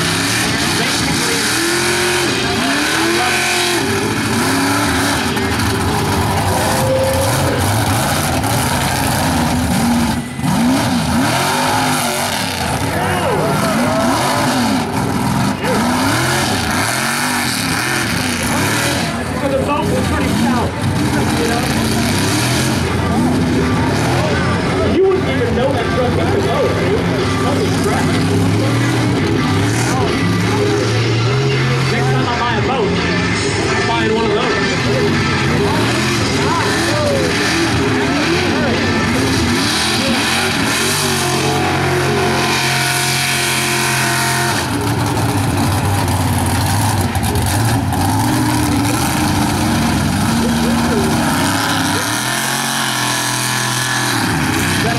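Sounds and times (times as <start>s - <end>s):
truck engine revving hard: 0.0s - 54.9s.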